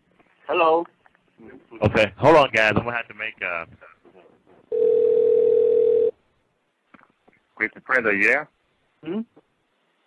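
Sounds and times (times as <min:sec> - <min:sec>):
telephone ringback tone: 0:04.7 - 0:06.2.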